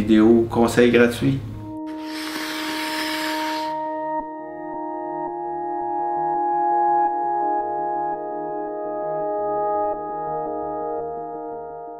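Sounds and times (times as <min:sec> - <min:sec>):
skate blade scraping ice: 0:01.9 - 0:03.8.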